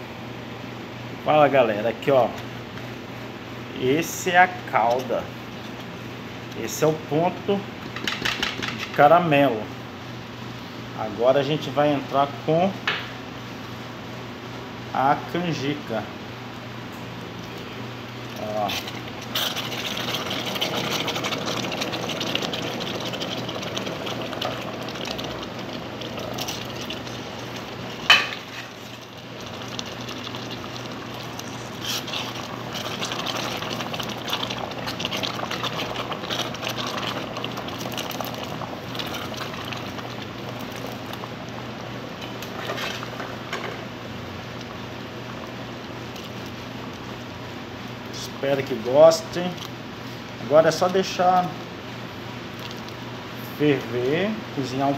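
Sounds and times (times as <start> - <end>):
syrup boiling and bubbling: 1.4 - 10.3, 17.4 - 54.9.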